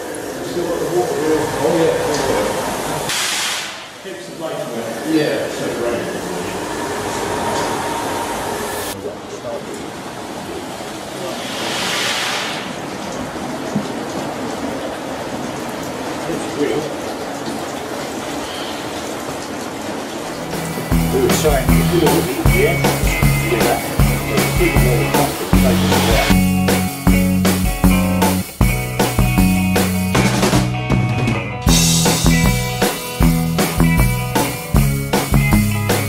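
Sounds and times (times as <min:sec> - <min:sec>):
water rushing and splashing: 0:00.0 - 0:26.4.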